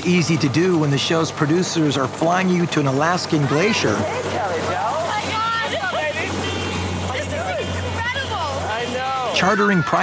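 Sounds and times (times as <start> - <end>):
aircraft engine humming: 0.0 - 10.0
excited voices: 7.1 - 10.0.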